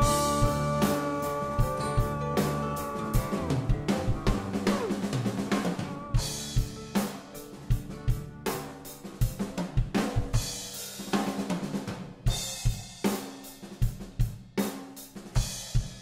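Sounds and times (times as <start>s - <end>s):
acoustic drum kit: 0.0s - 16.0s
band backing track: 0.0s - 16.0s.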